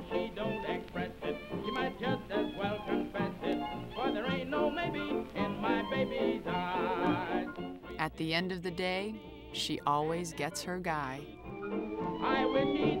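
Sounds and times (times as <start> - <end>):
person singing: 0.0 - 11.3, 12.0 - 13.0
instrumental accompaniment: 0.0 - 13.0.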